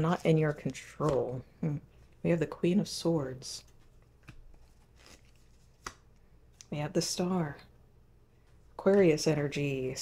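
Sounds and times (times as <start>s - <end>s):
cards rustling: 0.0s - 2.2s, 3.6s - 6.6s.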